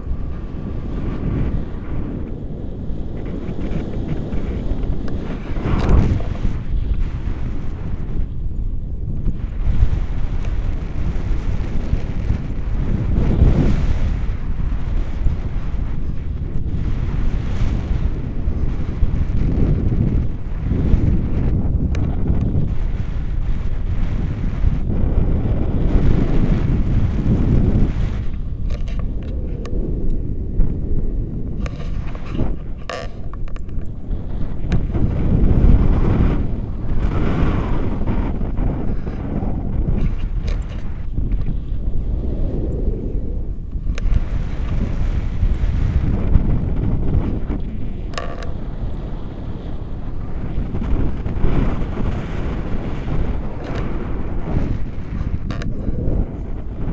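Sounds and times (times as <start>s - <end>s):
wind buffeting microphone: 0.0s - 56.9s.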